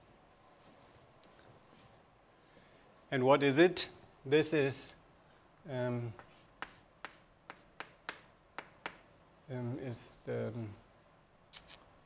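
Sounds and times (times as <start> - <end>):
chalk tapping on blackboard: 6.2 - 9.1.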